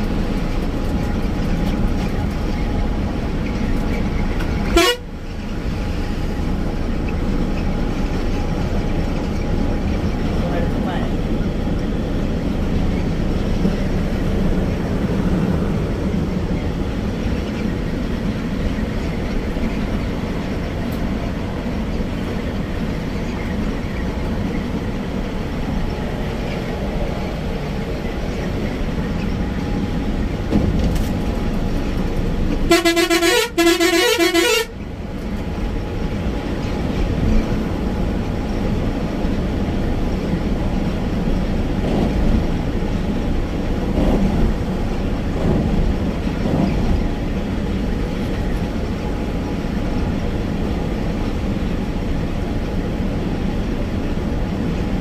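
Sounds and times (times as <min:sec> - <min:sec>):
bus engine and road noise: 0:00.0 - 0:55.0
bus horn blasts: 0:04.6 - 0:05.3, 0:32.6 - 0:34.8.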